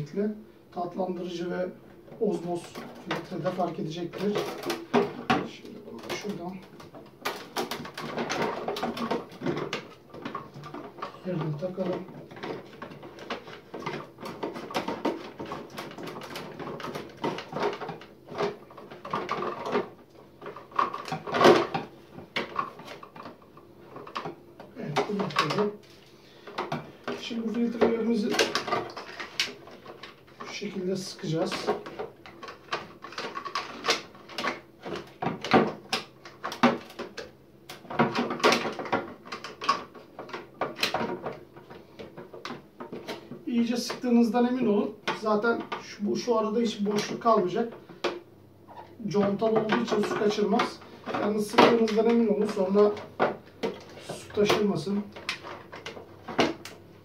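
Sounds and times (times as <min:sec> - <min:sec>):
person speaking: 0:00.0 - 0:06.9, 0:08.1 - 0:14.4, 0:24.6 - 0:29.1, 0:30.4 - 0:32.0, 0:43.3 - 0:47.9, 0:48.9 - 0:53.2, 0:53.8 - 0:55.3
plastic clicks and knocks: 0:02.1 - 0:30.5, 0:31.4 - 0:44.1, 0:46.8 - 0:56.8.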